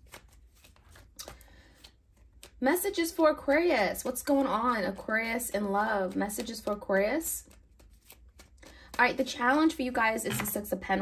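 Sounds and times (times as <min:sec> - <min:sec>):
cards being shuffled: 0:00.0 - 0:10.8.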